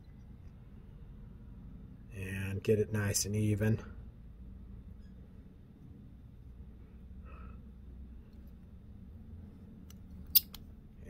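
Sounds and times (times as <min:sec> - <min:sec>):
metal tool click: 0:09.9 - 0:10.6.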